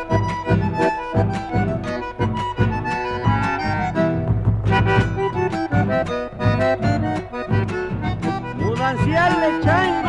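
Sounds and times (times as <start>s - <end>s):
accordion folk dance music: 0.0s - 10.0s.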